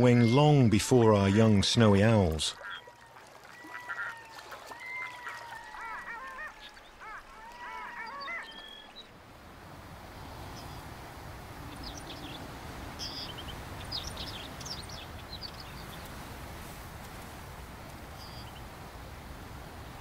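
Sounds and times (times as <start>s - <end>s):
loon wailing calls: 2.6s - 9.0s
outdoor background hiss: 8.7s - 20.0s.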